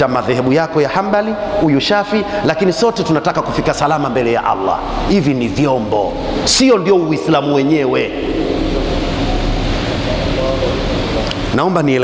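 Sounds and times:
low hum: 0.0s - 12.0s
steady rushing noise: 0.9s - 12.0s.

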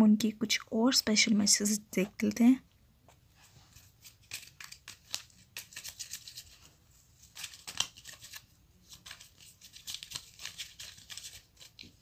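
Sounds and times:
paper rustling and crinkling: 3.4s - 12.0s.

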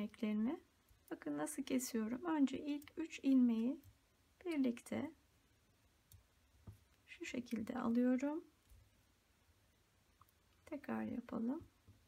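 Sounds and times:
knitting needles clicking: 0.0s - 4.9s, 5.9s - 8.0s.

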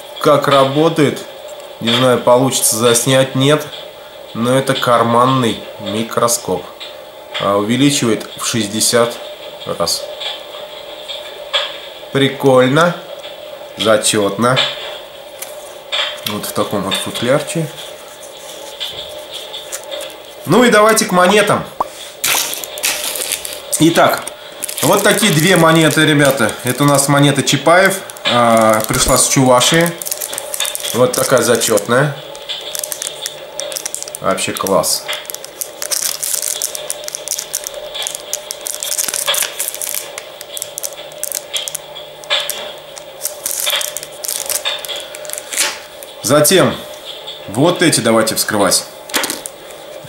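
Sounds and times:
blister pack rustling and scraping: 17.9s - 20.5s, 22.0s - 46.2s.

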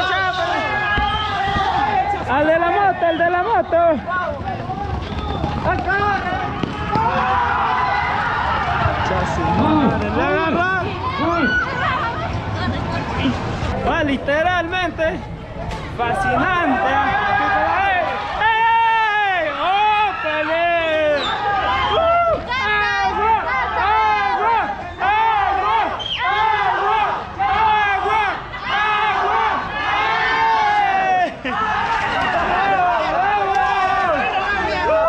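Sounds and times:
young voices shouting and chanting: 6.0s - 13.4s, 16.0s - 35.0s.

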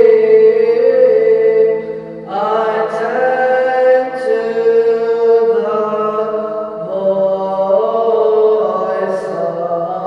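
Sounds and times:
person chanting long notes: 0.0s - 10.0s.

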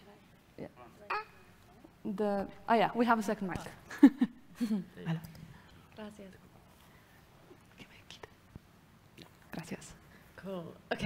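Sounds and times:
faint whispering: 7.5s - 8.4s.

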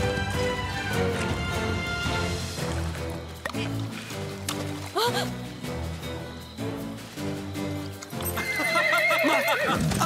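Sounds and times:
background music: 0.0s - 10.0s
horse whinnying: 8.2s - 10.0s.

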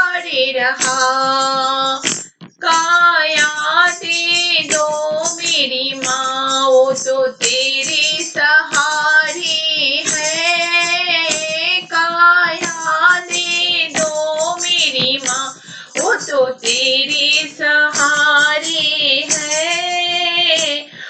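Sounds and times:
high voice singing devotional song: 0.0s - 21.0s.

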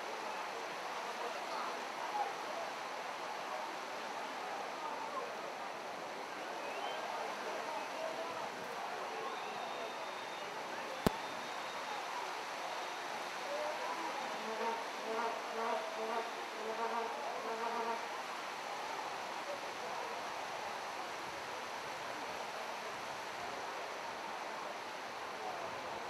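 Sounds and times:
background hiss: 0.0s - 26.0s.

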